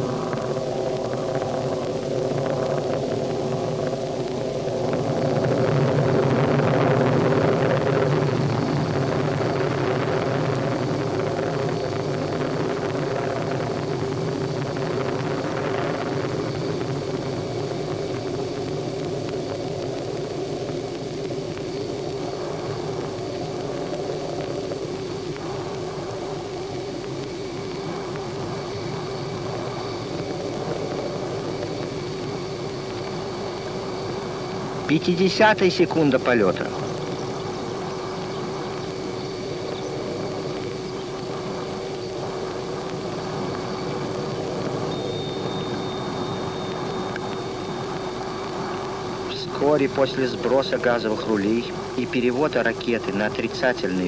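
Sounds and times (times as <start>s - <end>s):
rocket engine roaring: 0.0s - 54.0s.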